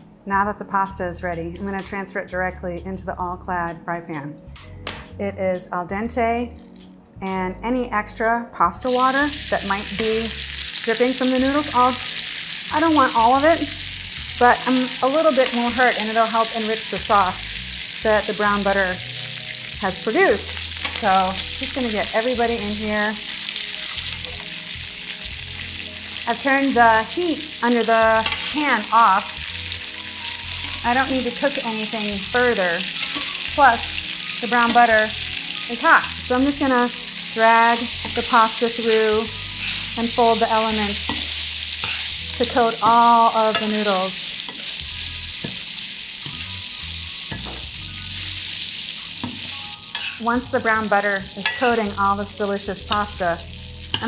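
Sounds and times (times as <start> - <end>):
butter sizzling in a pan: 8.8 - 54.0
metal tongs clicking on pan: 28.2 - 28.6, 41.0 - 42.1, 42.8 - 43.9, 49.2 - 50.2, 51.3 - 52.0.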